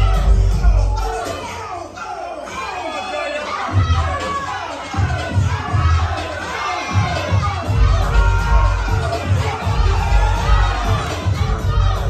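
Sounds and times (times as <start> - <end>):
dance music with bass beat: 0.0 - 2.8, 3.4 - 12.0
crowd cheering and shouting: 0.0 - 12.0.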